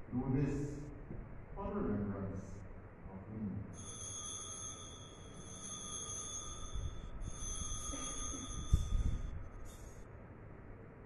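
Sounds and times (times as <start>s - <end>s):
altar bell ringing: 3.7s - 10.0s.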